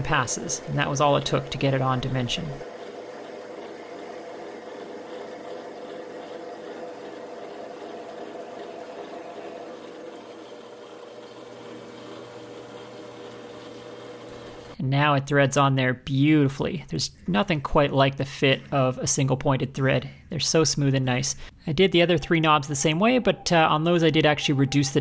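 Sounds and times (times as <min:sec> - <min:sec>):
metal lathe humming: 0:00.0 - 0:14.8.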